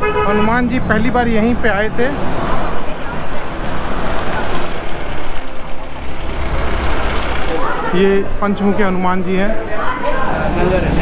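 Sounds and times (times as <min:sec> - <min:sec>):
deep engine rumble: 0:00.0 - 0:07.9
heavy vehicle passing: 0:00.0 - 0:11.0.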